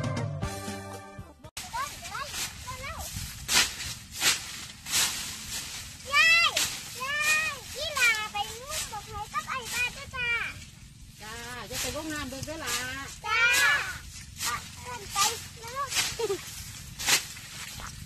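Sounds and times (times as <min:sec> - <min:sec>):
children talking and calling out: 0:01.6 - 0:03.2, 0:06.0 - 0:10.6, 0:13.0 - 0:16.4
short rustling: 0:01.6 - 0:18.0.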